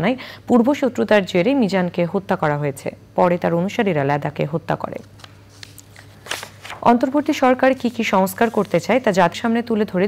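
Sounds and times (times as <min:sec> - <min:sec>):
faint steady hum: 0:00.0 - 0:10.0
paper rustling: 0:05.0 - 0:09.4.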